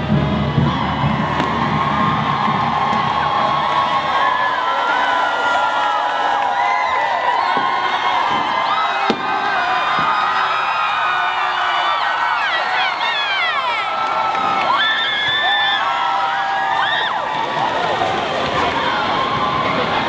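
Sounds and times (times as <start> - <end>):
crowd cheering and whooping: 0.0 - 20.0.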